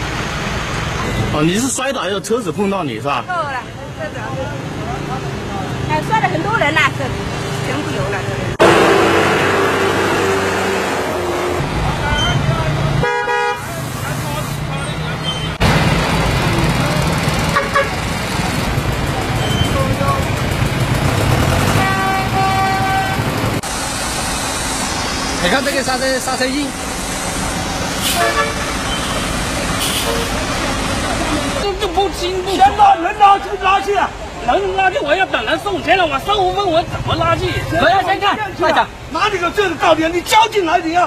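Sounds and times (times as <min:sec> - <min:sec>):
road traffic noise: 0:00.0 - 0:41.0
vehicle engine droning: 0:04.6 - 0:13.0, 0:13.7 - 0:31.9.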